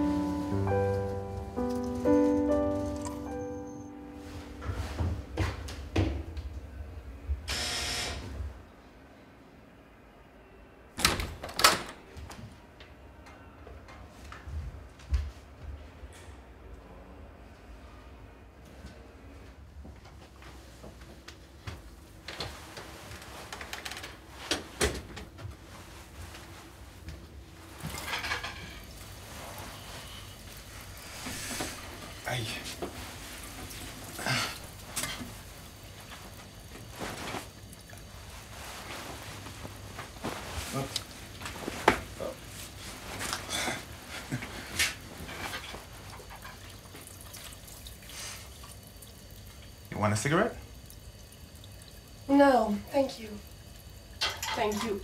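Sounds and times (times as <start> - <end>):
water splashing in sink: 46.1 - 49.9
dishes clinking: 54.2 - 55.0.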